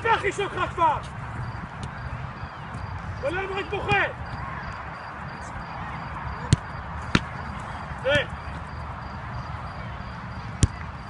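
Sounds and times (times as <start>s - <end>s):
football being kicked: 6.4s - 7.4s, 10.6s - 10.9s.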